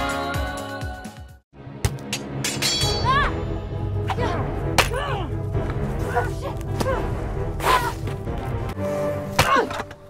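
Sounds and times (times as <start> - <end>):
background music: 0.0 - 10.0
swords clashing: 2.4 - 3.3, 9.4 - 10.0.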